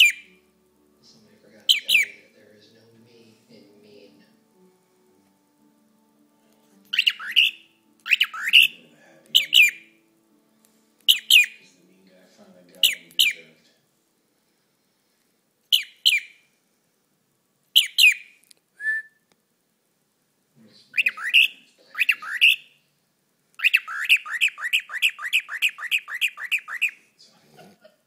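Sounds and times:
cockatiel chirping: 0.0s - 0.4s, 1.7s - 2.3s, 6.9s - 10.0s, 11.1s - 11.6s, 12.8s - 13.5s, 15.7s - 16.4s, 17.7s - 18.4s, 21.0s - 22.8s, 23.6s - 27.0s.

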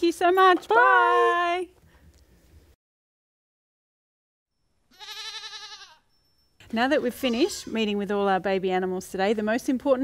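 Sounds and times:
young goat bleating: 4.9s - 6.0s, 7.0s - 7.8s.

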